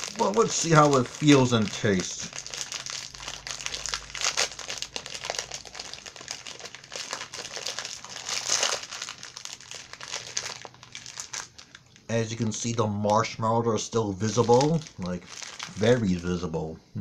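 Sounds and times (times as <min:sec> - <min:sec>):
plastic wrapper crinkling: 0:00.0 - 0:13.4, 0:14.0 - 0:16.3.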